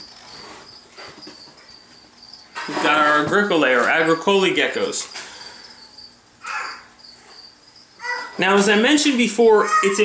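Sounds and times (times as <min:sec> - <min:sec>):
crickets chirping: 0:00.0 - 0:09.5.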